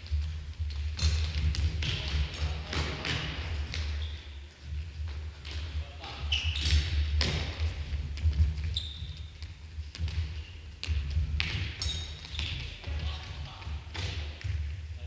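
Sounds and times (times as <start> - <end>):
sports shoes squeaking: 0.1 - 14.6
ball kicked on gym floor: 6.4 - 13.2.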